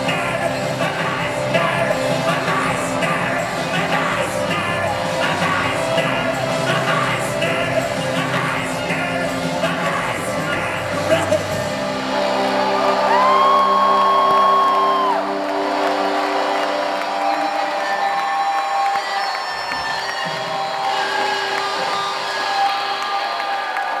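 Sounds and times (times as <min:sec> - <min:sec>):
crowd cheering and whooping: 0:11.8 - 0:24.0.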